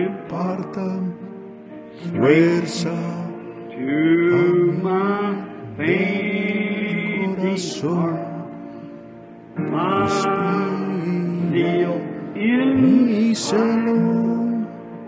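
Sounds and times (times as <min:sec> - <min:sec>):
congregation singing a hymn: 0:02.0 - 0:08.6, 0:09.6 - 0:15.0.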